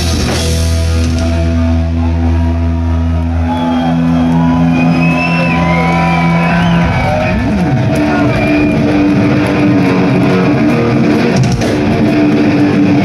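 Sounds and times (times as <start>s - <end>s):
electric guitars and bass ringing: 0.0s - 13.0s.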